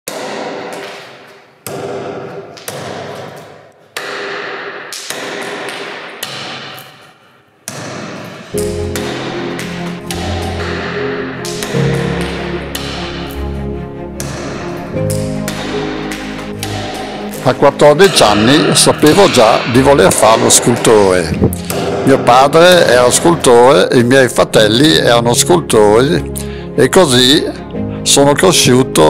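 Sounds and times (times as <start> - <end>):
sharp echoing knocks: 0.1 - 26.6
music with sustained low notes: 8.6 - 29.0.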